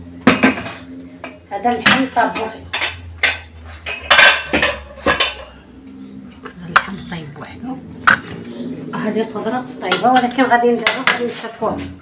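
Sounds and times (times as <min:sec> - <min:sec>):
metal pot and lid clanking: 0:00.2 - 0:05.7.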